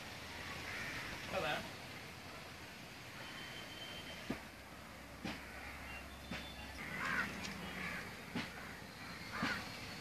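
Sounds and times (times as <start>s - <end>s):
harsh bird calls: 5.2s - 10.0s.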